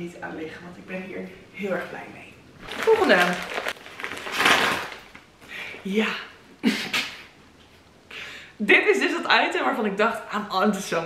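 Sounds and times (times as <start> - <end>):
plastic bag ripping: 2.6 - 5.3.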